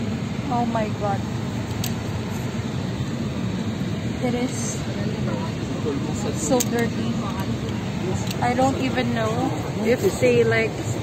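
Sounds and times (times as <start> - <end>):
airplane cabin rumble and hiss: 0.0 - 11.0.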